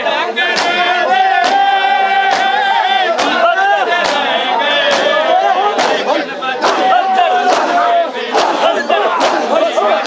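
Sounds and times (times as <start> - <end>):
long held cry: 0.0 - 10.0
men shouting together: 0.0 - 10.0
hands slapping bare chests: 0.6 - 0.8, 1.4 - 1.7, 2.3 - 3.4, 4.0 - 9.6.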